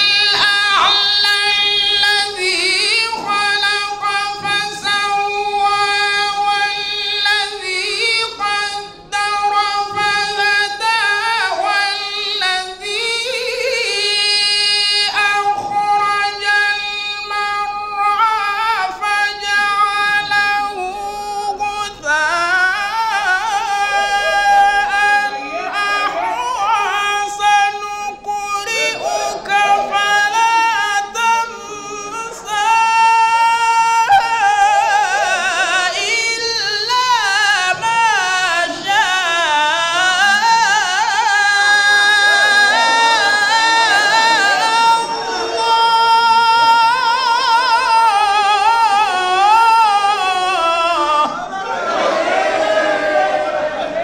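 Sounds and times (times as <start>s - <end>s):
man chanting solo: 0.0s - 51.3s.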